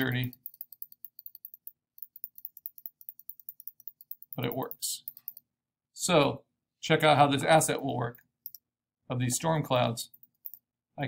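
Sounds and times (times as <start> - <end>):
computer mouse clicking: 0.0 - 5.5, 8.4 - 8.6, 10.1 - 10.6.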